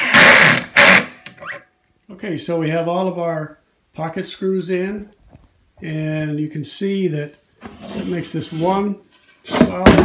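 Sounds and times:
cordless drill driving screw: 0.0s - 1.1s.

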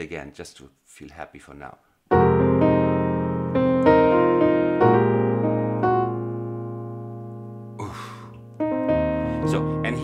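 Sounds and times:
piano playing jazz chords: 2.1s - 10.0s.

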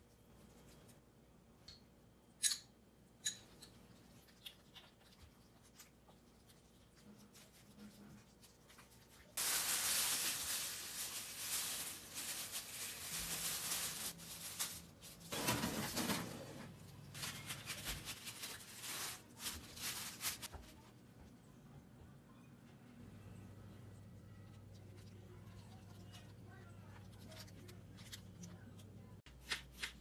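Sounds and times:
plastic roasting sleeve crinkling: 7.1s - 20.9s.

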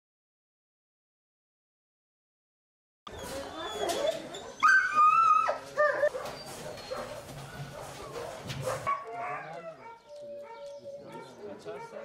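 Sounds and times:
dog whining: 3.1s - 7.2s
dogs calling: 3.1s - 12.0s.

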